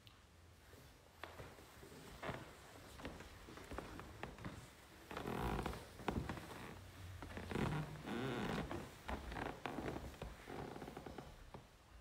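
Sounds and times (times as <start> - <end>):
soft rustling and creaking: 0.1 - 12.0.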